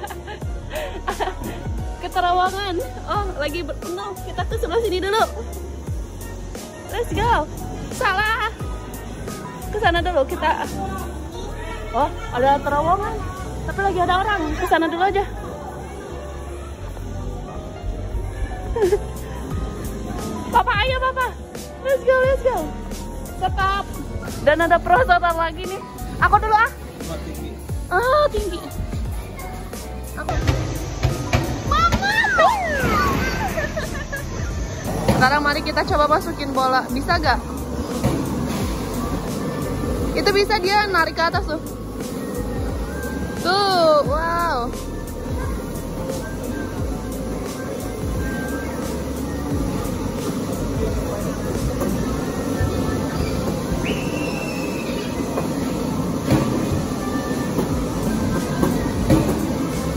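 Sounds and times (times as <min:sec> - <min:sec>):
background music: 0:00.0 - 0:59.9
blower rushing rumble: 0:00.0 - 0:59.9
crowd noise: 0:03.6 - 0:59.9.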